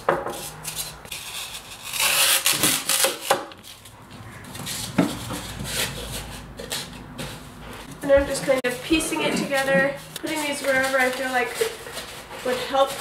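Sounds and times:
foam rubbing against plastic: 0.3 - 7.6, 8.3 - 13.0.

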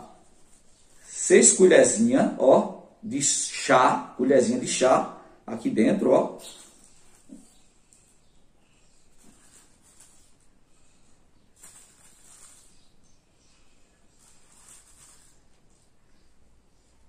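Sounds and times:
plastic bag rustling: 11.5 - 13.0.

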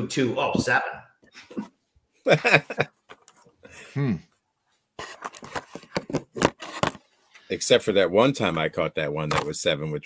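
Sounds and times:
irregular clicks and scrapes: 5.0 - 7.5.

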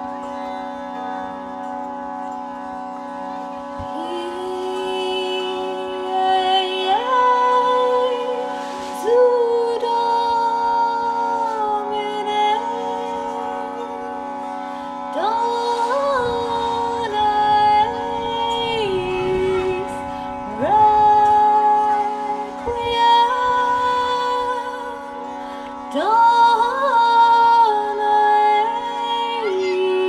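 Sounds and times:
harmonium: 0.0 - 30.0
tanpura drone: 0.0 - 30.0.

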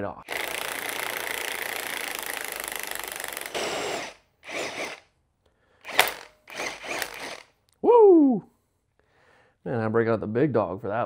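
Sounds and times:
impact wrench running: 0.3 - 5.1, 5.8 - 7.5.

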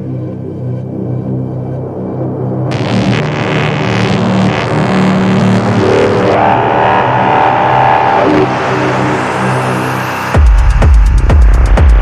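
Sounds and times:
held synth chords and pads: 0.0 - 12.0
rising noise sweep: 2.6 - 10.4.

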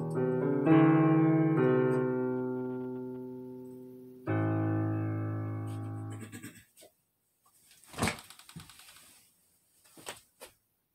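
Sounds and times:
electronic keyboard chord: 0.0 - 6.2.

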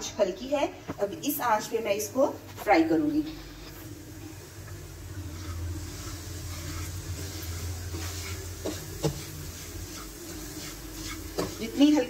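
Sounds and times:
low steady hum: 0.0 - 12.0
semolina sizzling in a pan: 0.1 - 12.0.

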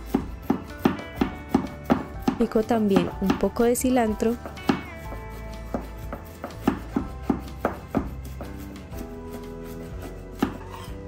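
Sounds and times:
knife chopping on wooden board: 0.0 - 11.0.

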